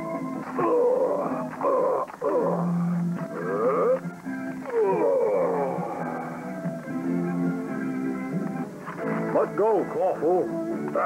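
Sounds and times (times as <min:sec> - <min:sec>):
background music of held chords: 0:00.0 - 0:11.0
voice wailing and moaning: 0:00.2 - 0:06.5.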